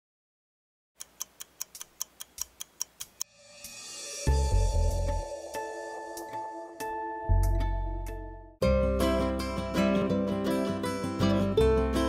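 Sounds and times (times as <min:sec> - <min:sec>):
crisp clock-like ticking: 0:01.0 - 0:03.3.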